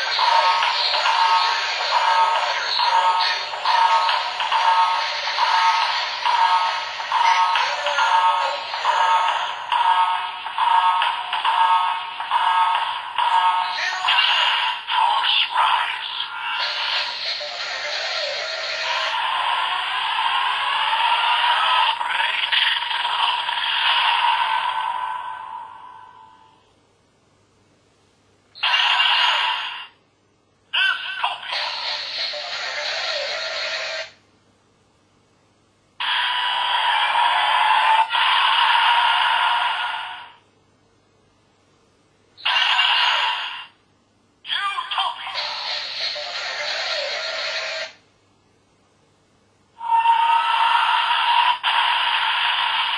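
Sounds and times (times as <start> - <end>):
toy belt electronic sound effects: 0.0 - 26.4, 28.6 - 29.9, 30.8 - 34.1, 36.0 - 40.3, 42.4 - 43.8, 44.6 - 48.0, 49.8 - 52.9.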